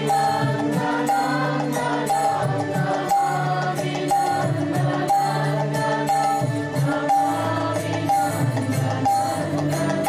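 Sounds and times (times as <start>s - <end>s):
devotional music: 0.0s - 10.0s
low voices chanting a mantra: 0.0s - 10.0s.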